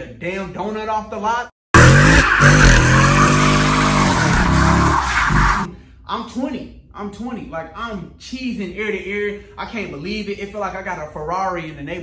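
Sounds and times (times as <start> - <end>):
car engine at high revs: 1.8 - 5.7
tyres squealing: 1.8 - 5.7.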